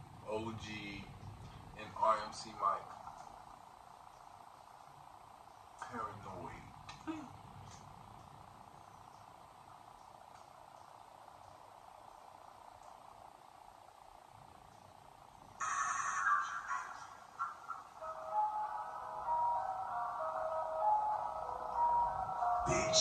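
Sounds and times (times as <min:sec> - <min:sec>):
faint room hum: 0:00.0 - 0:23.0
rap music: 0:15.6 - 0:20.6, 0:22.5 - 0:23.0
melodic music intro: 0:16.6 - 0:23.0.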